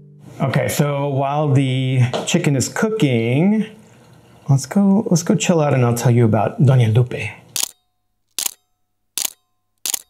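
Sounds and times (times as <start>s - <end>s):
camera shutter clicks: 7.6s - 8.6s, 9.2s - 10.0s.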